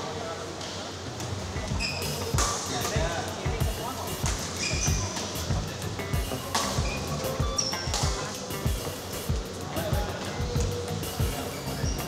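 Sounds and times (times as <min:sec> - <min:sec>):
voices: 0:00.0 - 0:12.0
background music: 0:01.2 - 0:12.0
shoe squeaks on court floor: 0:01.6 - 0:02.6, 0:04.2 - 0:05.5, 0:06.3 - 0:08.4
rackets striking shuttlecock: 0:01.6 - 0:09.5.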